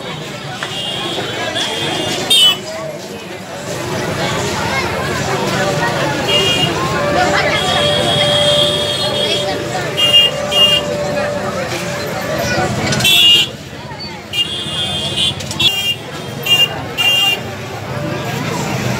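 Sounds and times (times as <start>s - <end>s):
crowd chatter: 0.0s - 18.9s
motorcycle horn toots: 6.2s - 11.6s.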